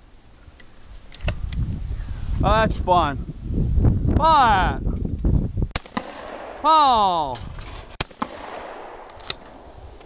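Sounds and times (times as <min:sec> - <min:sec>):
wind rumbling on microphone: 0:00.8 - 0:10.0.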